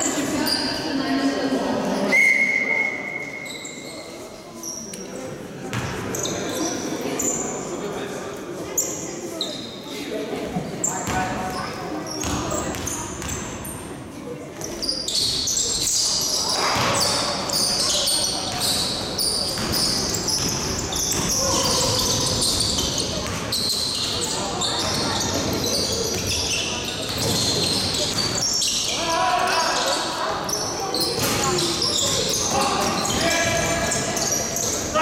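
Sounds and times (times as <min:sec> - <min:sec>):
shoes squeaking on floor: 0:03.1 - 0:05.0, 0:05.8 - 0:07.6, 0:08.8 - 0:09.8, 0:10.8 - 0:13.6, 0:14.6 - 0:35.0
basketball bouncing on court: 0:05.7 - 0:06.0, 0:12.2 - 0:13.5, 0:18.4 - 0:24.1, 0:24.8 - 0:28.4.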